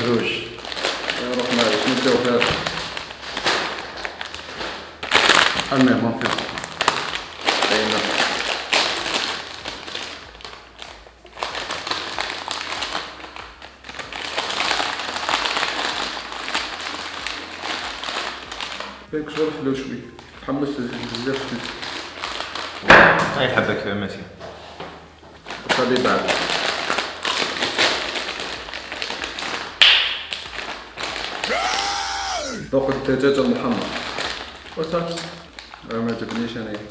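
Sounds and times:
plastic chip bag crinkling: 0.0s - 19.6s, 20.8s - 22.8s, 25.5s - 32.6s, 33.6s - 36.9s
bag seal tearing pop: 22.4s - 23.4s.

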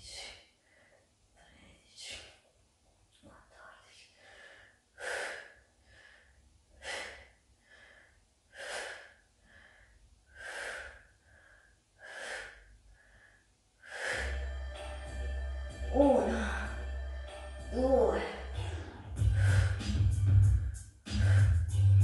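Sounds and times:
woman breathing out forcefully: 4.2s - 14.4s, 18.5s - 19.9s, 20.6s - 21.6s
instrumental hip-hop music: 14.2s - 15.9s, 16.7s - 17.7s, 18.3s - 22.0s.

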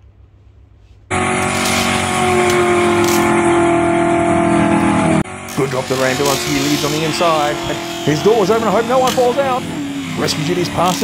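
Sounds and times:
race car engine: 1.1s - 11.0s.

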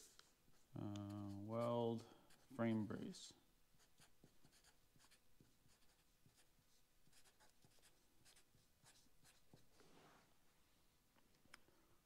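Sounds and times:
pen scratching on paper: 2.3s - 2.6s, 3.8s - 9.7s.

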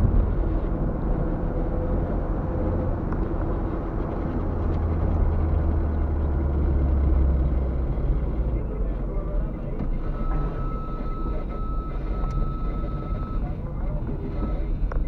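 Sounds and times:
car engine rumble: 0.0s - 15.0s
tyres on road: 0.0s - 15.0s.

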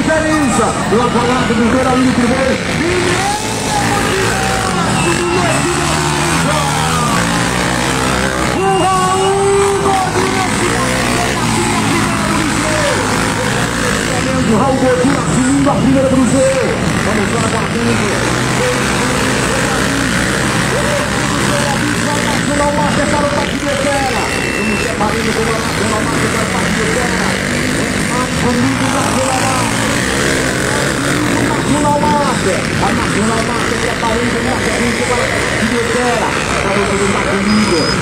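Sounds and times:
dirt bike engines revving: 0.0s - 38.0s
voices: 0.0s - 38.0s.

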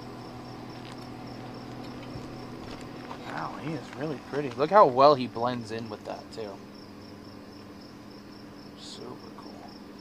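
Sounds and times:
crickets trilling: 0.0s - 10.0s
low steady hum: 0.0s - 10.0s.

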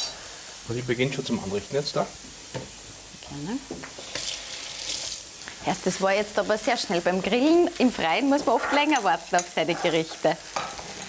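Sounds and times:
meat sizzling on a grill: 0.0s - 11.0s.

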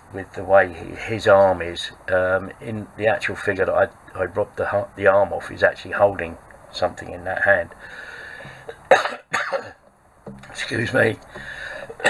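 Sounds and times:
man coughing: 8.8s - 9.8s.

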